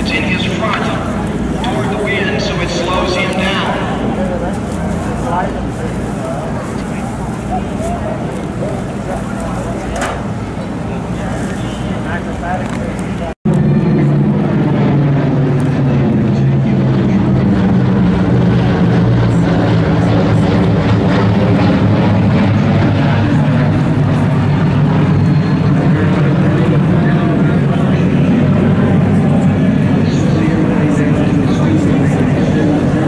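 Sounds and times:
propeller aircraft flying overhead: 0.0s - 33.0s.

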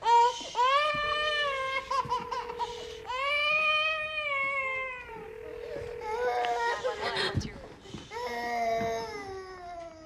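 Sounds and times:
baby wailing: 0.0s - 7.3s
faint steady tone: 0.9s - 7.7s.

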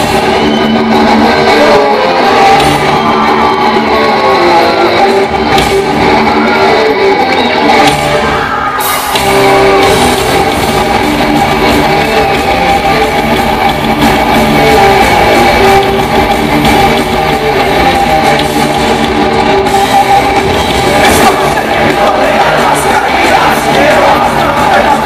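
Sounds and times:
heavy metal band playing: 0.0s - 25.0s.

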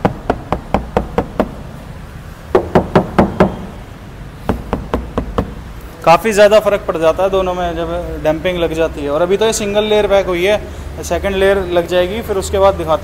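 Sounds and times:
knuckles knocking on metal door: 0.0s - 1.6s, 2.5s - 3.7s, 4.5s - 5.6s.

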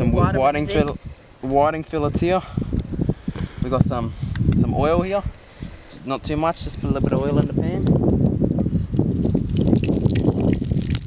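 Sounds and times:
oil trickling into frying pan: 8.6s - 11.0s.

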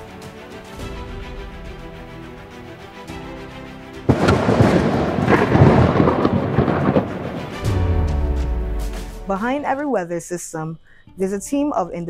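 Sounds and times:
theme music with held notes: 0.0s - 10.4s
thunder crash: 4.1s - 9.3s.

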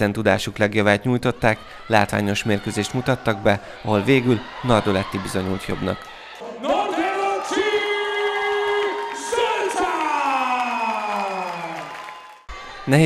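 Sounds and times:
crowd cheering: 0.9s - 13.0s.

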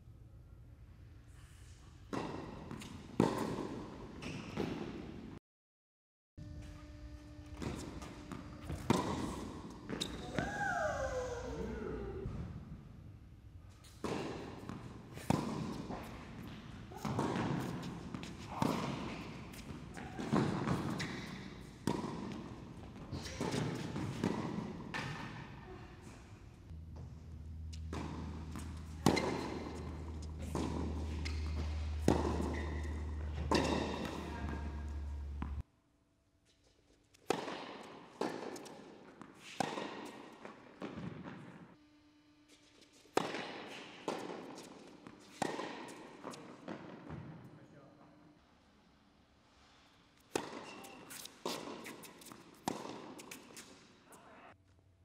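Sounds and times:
tennis balls struck by racquets: 2.1s - 5.3s, 7.6s - 10.6s, 13.8s - 25.6s, 26.7s - 35.6s, 37.2s - 41.6s, 43.1s - 47.4s, 50.2s - 53.8s
balls bouncing on hard court: 7.5s - 10.9s, 13.8s - 25.6s, 26.9s - 35.6s, 37.2s - 41.6s, 50.3s - 53.7s
low hum: 26.0s - 35.6s.

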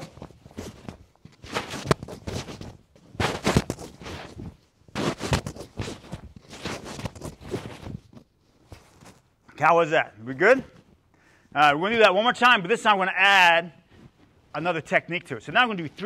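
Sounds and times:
uniform fabric swishing and snapping: 0.0s - 9.3s
bare feet scuffing on mats: 0.0s - 9.4s.

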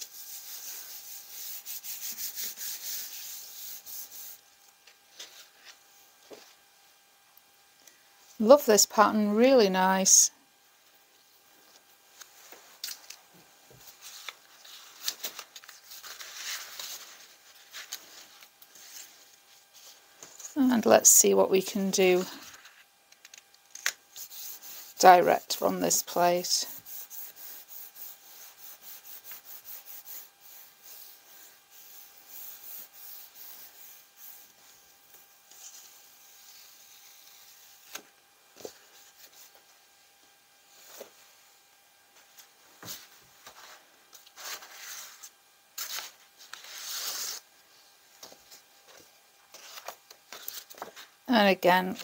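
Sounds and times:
hands rubbing over paper: 0.0s - 4.4s, 13.8s - 20.5s, 24.2s - 38.0s
paper rustling: 13.8s - 20.6s, 42.8s - 47.4s, 48.2s - 51.1s.

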